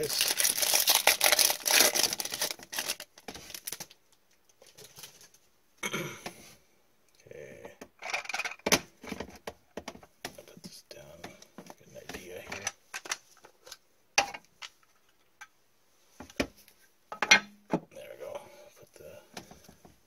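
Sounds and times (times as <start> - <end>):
cards rustling: 0.0 - 3.9
foil pack crinkling: 0.0 - 4.0.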